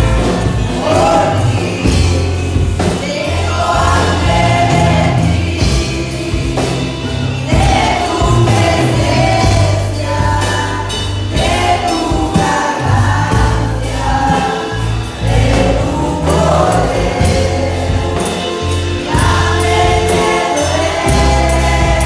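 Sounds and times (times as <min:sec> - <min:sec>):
group singing a worship song: 0:00.0 - 0:22.0
keyboard: 0:00.0 - 0:22.0
low bass notes: 0:00.0 - 0:22.0.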